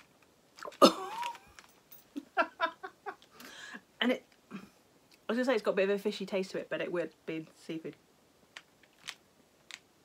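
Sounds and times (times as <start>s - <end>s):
woman coughing: 0.8s - 1.3s.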